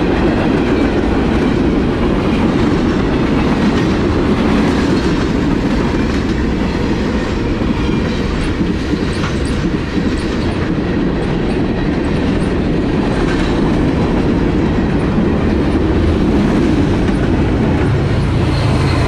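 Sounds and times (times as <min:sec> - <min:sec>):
freight train wheels rumbling: 0:00.0 - 0:19.0.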